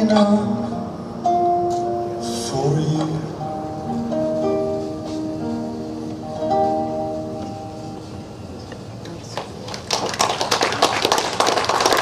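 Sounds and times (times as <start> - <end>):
audience clapping: 9.3 - 12.0.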